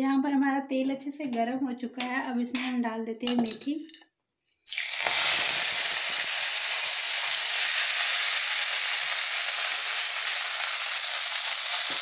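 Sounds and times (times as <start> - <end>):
leaves sizzling in hot oil: 4.7 - 12.0.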